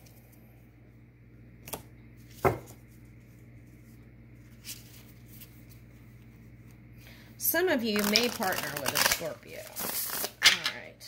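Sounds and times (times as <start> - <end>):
low hum: 0.0 - 7.8.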